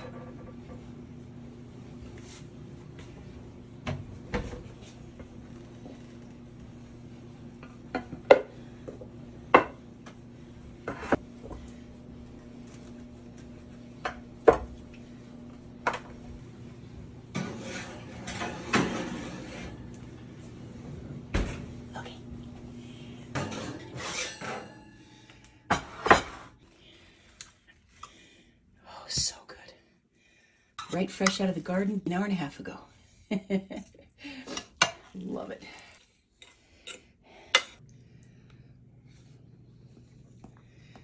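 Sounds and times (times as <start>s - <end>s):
steady low hum: 0.0s - 41.0s
dish scraping onto oven rack: 17.3s - 19.9s, 23.3s - 26.6s.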